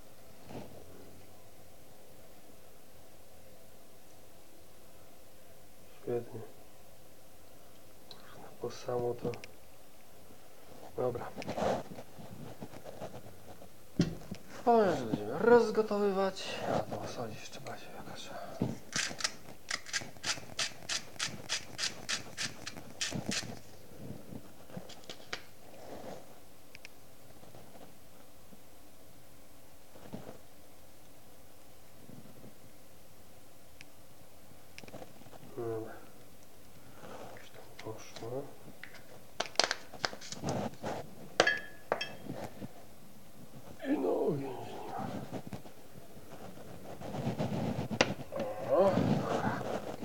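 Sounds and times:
plastic capsule clicking and crackling: 0:38.8 - 0:40.4
metallic clink on a pot: 0:41.4 - 0:42.2.

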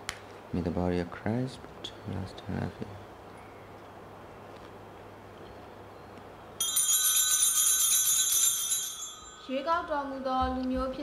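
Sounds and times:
small bells shaken rapidly: 0:06.6 - 0:09.9.

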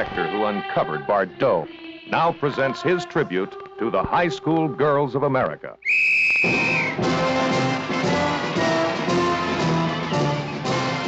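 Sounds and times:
marching brass band music: 0:06.4 - 0:11.0.

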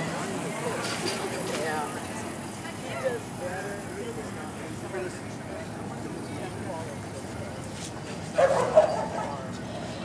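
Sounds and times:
dog barking: 0:08.4 - 0:09.4.

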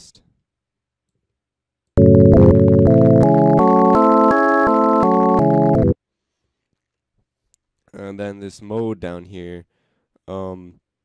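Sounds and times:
synth chord arpeggio: 0:02.0 - 0:06.0.

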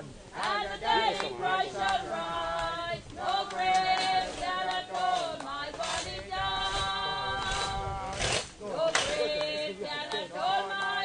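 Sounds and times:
group singing unaccompanied: 0:00.0 - 0:11.0.

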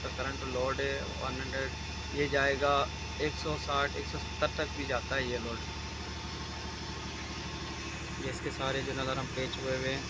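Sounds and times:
power cabinet humming: 0:00.0 - 0:10.0.

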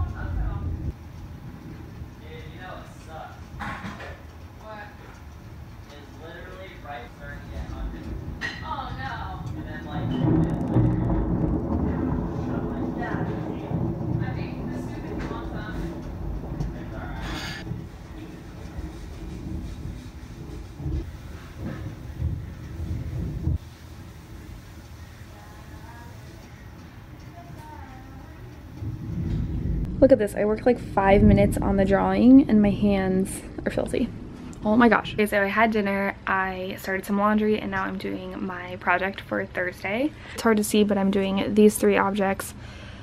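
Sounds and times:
thunder rumbling: 0:00.0 - 0:43.0.

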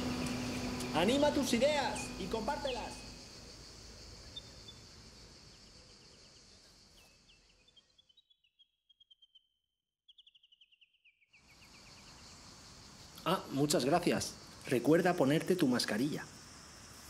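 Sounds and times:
faint outdoor ambience: 0:00.0 - 0:08.2, 0:11.3 - 0:17.0.

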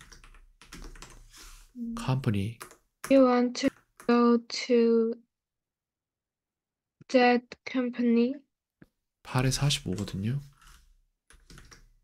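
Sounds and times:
computer keyboard key presses: 0:00.0 - 0:01.2, 0:02.6 - 0:04.2, 0:09.8 - 0:11.9.

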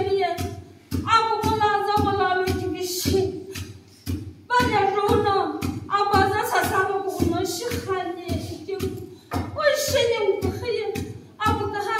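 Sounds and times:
wooden pestles pounding mortar: 0:00.0 - 0:11.9.

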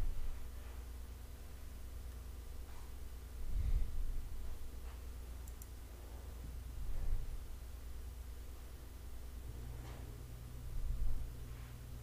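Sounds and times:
steady low hum: 0:00.0 - 0:12.0
faint clicks: 0:05.4 - 0:05.7.

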